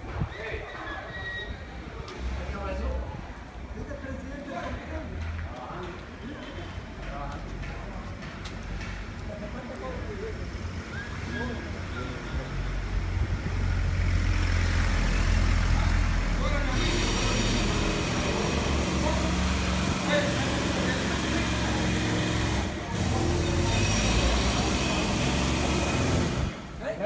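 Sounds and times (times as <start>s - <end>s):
heavy vehicle engine rumble: 5.0s - 26.8s.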